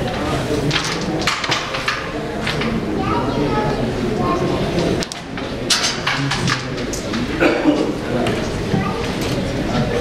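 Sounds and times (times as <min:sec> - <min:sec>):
indistinct voices talking: 0:00.0 - 0:10.0.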